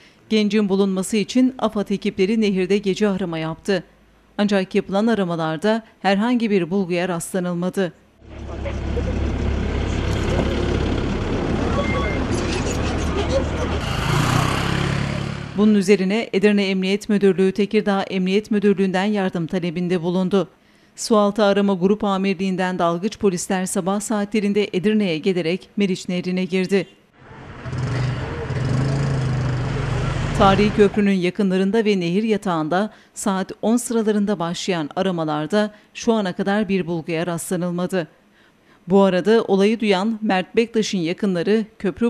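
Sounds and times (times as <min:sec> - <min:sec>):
outdoor noise: 0:00.0 - 0:42.0
low engine rumble: 0:08.2 - 0:15.6, 0:27.2 - 0:31.0.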